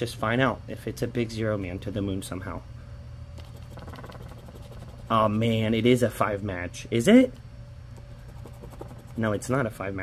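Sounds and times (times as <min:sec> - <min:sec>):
scraping lottery ticket coating: 0:03.4 - 0:05.3, 0:08.2 - 0:09.4.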